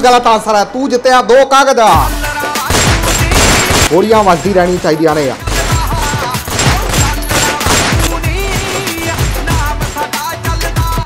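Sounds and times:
rapid gunfire: 0:02.6 - 0:04.2, 0:05.4 - 0:09.3.

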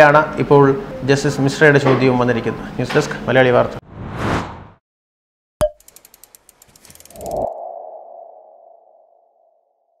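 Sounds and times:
quick accelerating ticks: 0:05.8 - 0:07.4.

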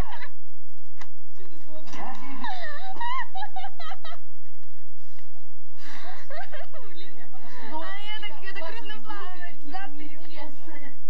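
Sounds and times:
person wailing cry: 0:01.9 - 0:03.5.

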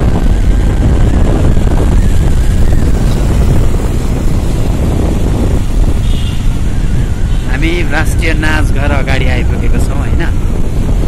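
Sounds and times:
motorbike engine running: 0:00.0 - 0:07.5
wind buffeting microphone: 0:00.0 - 0:11.0.

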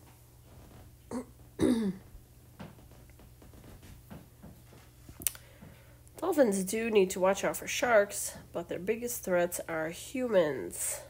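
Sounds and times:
woman clearing her throat: 0:01.1 - 0:02.0.

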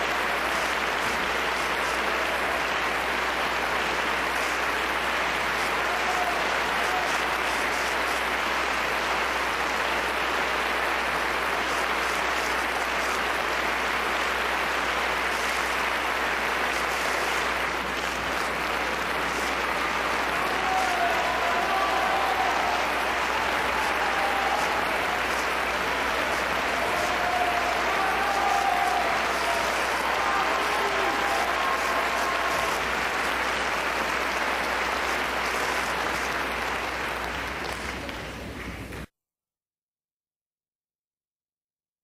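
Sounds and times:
audience applauding: 0:00.0 - 0:39.1.

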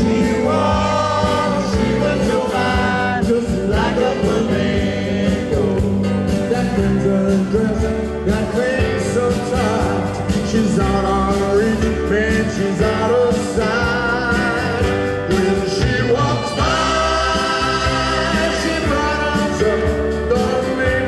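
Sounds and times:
man singing lead: 0:00.0 - 0:21.0
rock band playing: 0:00.0 - 0:21.0.

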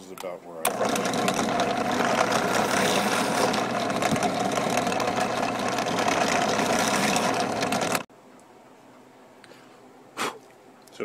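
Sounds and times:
drill press boring through plastic: 0:00.7 - 0:08.1.

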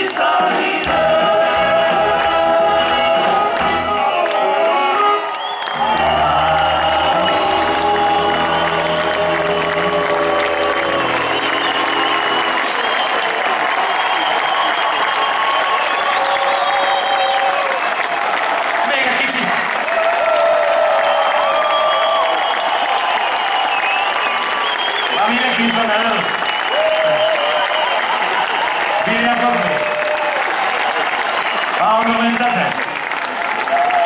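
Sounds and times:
audience applauding and cheering: 0:00.0 - 0:34.0.

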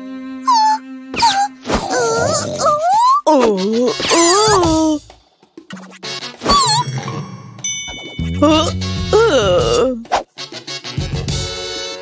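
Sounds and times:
cartoon character moaning: 0:00.5 - 0:05.0, 0:06.5 - 0:06.9, 0:08.4 - 0:10.1
held musical note: 0:06.5 - 0:09.8.

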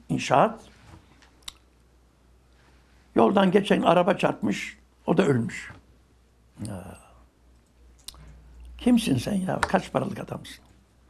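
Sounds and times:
man speaking: 0:00.0 - 0:00.7, 0:03.2 - 0:05.8, 0:06.6 - 0:07.2, 0:08.8 - 0:10.7.

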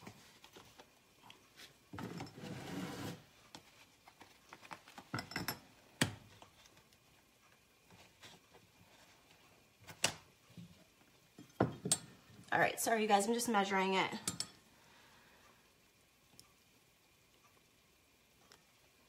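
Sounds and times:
kitchen items knocking and clinking: 0:05.1 - 0:05.7, 0:11.4 - 0:12.2
soft rustle: 0:07.8 - 0:09.7.

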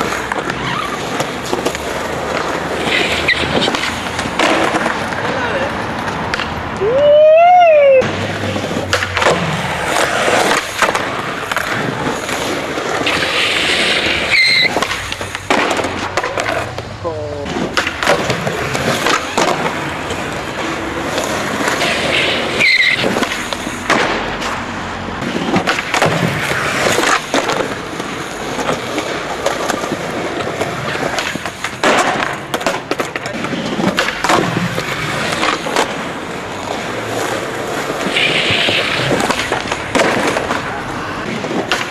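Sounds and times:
skateboard clacking: 0:00.0 - 0:41.9
skateboard rolling on stone: 0:00.0 - 0:41.9.

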